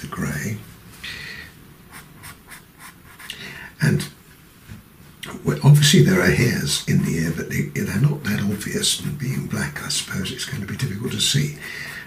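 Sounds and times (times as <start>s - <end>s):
pencil scratching on paper: 1.9s - 3.4s.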